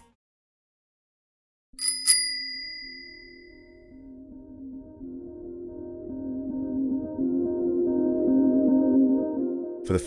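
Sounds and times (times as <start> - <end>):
bicycle bell ringing: 1.8 - 3.7.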